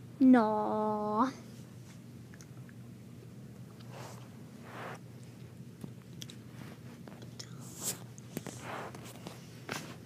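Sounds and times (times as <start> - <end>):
soft rustle: 3.8 - 5.4, 6.2 - 10.0.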